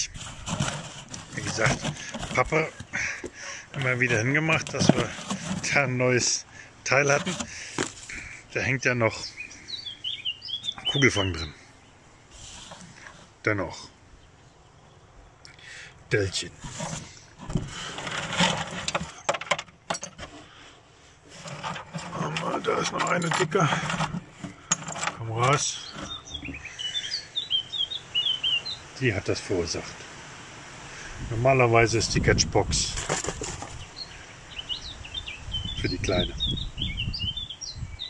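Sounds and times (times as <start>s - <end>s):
hand rummaging through cloth: 0.0s - 5.9s
rustling netting and debris: 0.0s - 6.4s, 16.4s - 27.2s
birds chirping faintly: 0.0s - 30.2s, 30.9s - 38.0s.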